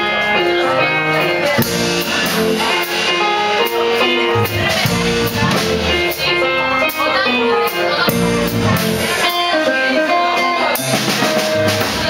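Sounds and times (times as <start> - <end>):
drum kit: 0.0 - 12.0
electric bass: 0.0 - 12.0
electric guitar melody: 0.0 - 12.0
piano: 0.0 - 12.0.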